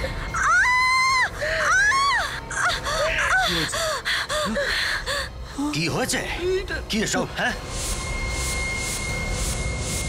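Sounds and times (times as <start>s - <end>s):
woman screaming: 0.4s - 3.4s.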